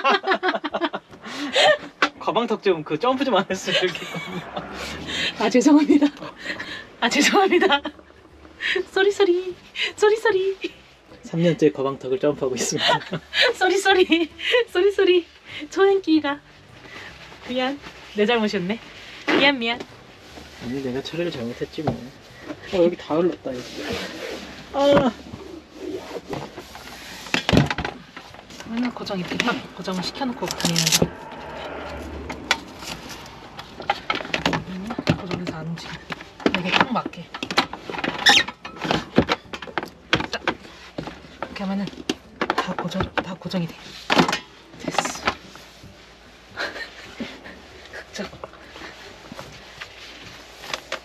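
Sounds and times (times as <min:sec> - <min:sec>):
objects knocking and clattering: 0:26.3 - 0:30.8, 0:33.7 - 0:45.4.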